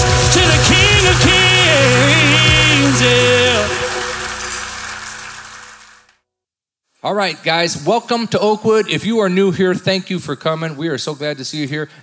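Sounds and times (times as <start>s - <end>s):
people singing: 0.0s - 4.6s
steady drum beat: 0.0s - 4.8s
held final chord: 0.0s - 5.9s.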